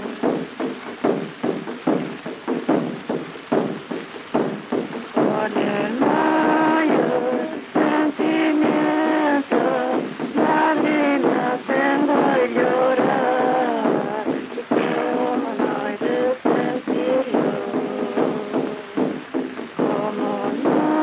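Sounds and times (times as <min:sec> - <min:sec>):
frame drum beating slowly: 0:00.0 - 0:21.0
women singing in two parts: 0:05.2 - 0:21.0.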